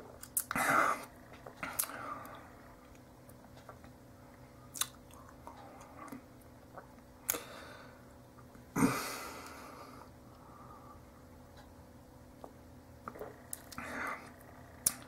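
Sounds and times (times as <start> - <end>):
lip smacks: 4.7 - 7.5.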